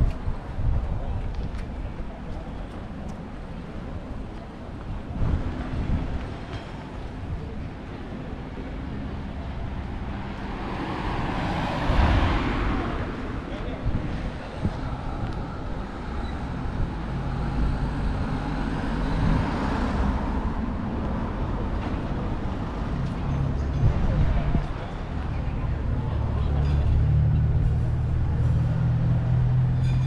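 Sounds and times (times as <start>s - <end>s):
people's voices: 0.0s - 29.6s
road traffic: 0.0s - 30.0s.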